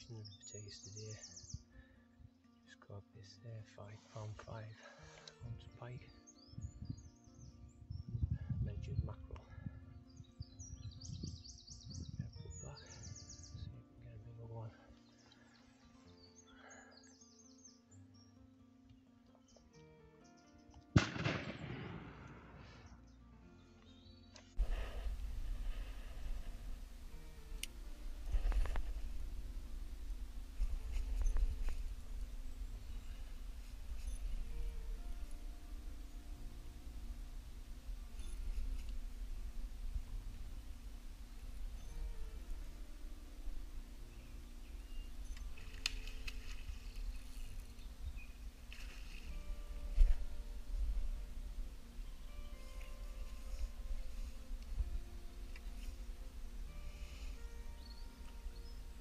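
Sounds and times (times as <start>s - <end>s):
faint background music: 0.0s - 59.0s
steady low rumble: 21.0s - 22.7s, 24.6s - 48.7s
sharp bang with rumbling tail: 21.0s - 22.8s
fishing rig splashing in river: 45.4s - 47.2s.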